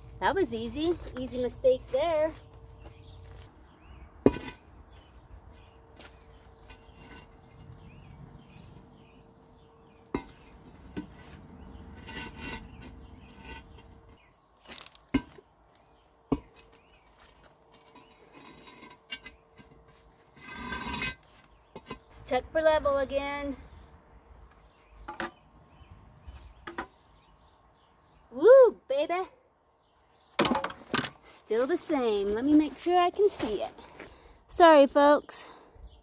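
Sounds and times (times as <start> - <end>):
cinder blocks scraping: 6.0 - 7.8, 10.2 - 15.2, 16.3 - 22.1.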